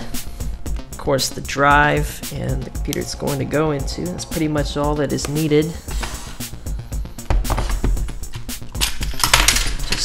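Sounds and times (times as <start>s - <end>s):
background music with low beat: 0.0s - 10.0s
screwdrivers rattling in case: 7.7s - 10.0s
plastic case clicks and clinks: 8.8s - 10.0s.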